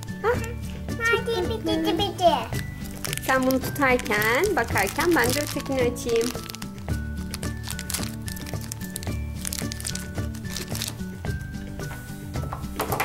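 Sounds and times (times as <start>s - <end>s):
light background music: 0.0s - 13.0s
plastic wrapper clicks and rustles: 2.8s - 11.6s.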